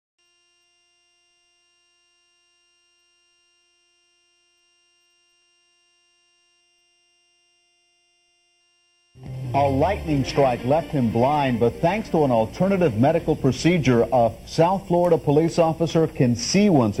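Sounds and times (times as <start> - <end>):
faint steady hum: 0.2 - 17.0.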